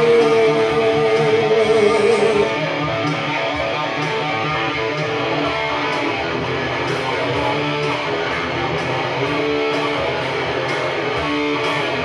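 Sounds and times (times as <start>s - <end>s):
electric guitar rock playing: 0.0s - 12.0s.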